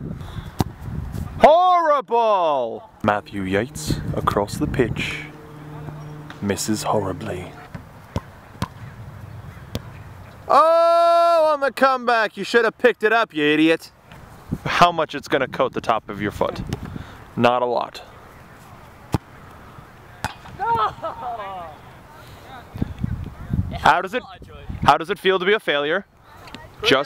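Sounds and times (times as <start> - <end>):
person shouting: 1.4 - 3.0, 10.5 - 11.6
faint low rumble: 2.6 - 10.4
football being kicked: 7.7 - 8.9, 9.7 - 9.9.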